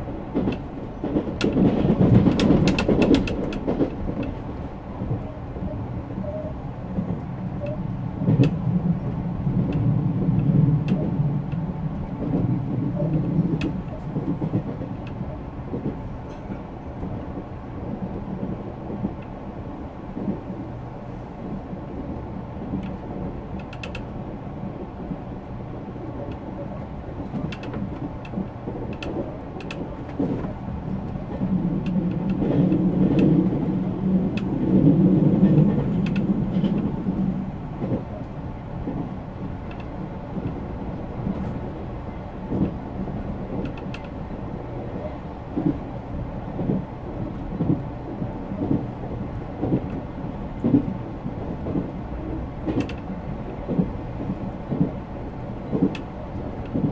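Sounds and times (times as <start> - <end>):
train wheels rumbling on rail: 0.0 - 56.9.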